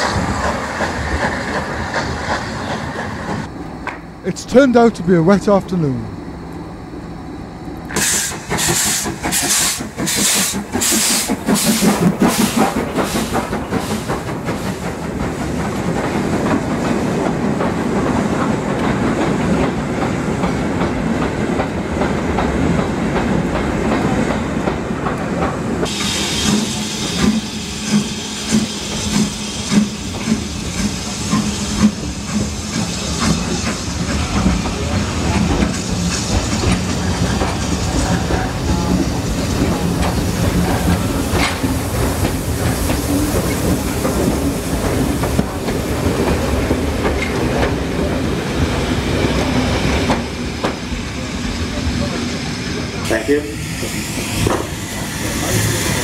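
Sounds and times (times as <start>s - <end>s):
steam exhaust beats: 7.8s - 19.7s, 25.8s - 51.6s
steam hissing: 7.9s - 17.2s, 25.8s - 56.0s
wheels clacking over rail joints: 28.5s - 50.9s.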